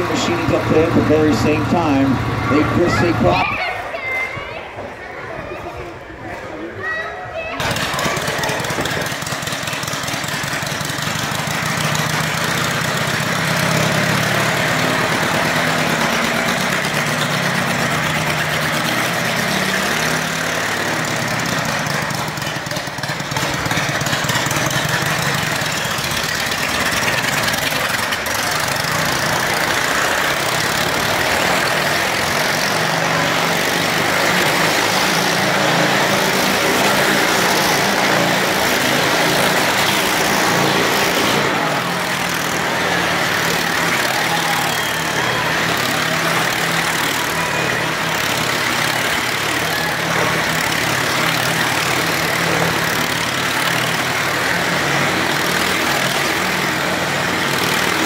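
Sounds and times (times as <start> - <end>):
motorcycle engines revving: 0.0 - 3.9, 7.4 - 58.0.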